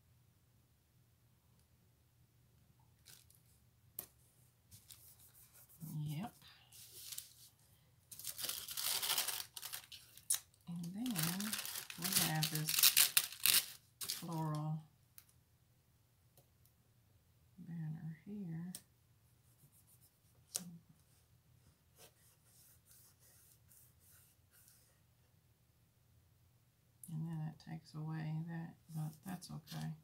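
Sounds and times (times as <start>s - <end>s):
paper crinkling and rustling: 6.8s - 14.4s.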